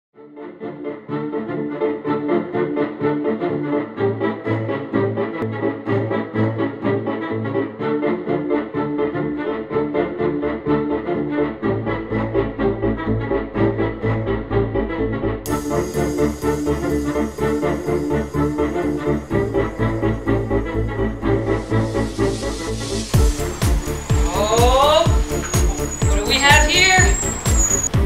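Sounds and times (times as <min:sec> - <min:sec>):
fast rhythmic background music: 0:01.0 - 0:28.0
deep bass line: 0:11.2 - 0:28.0.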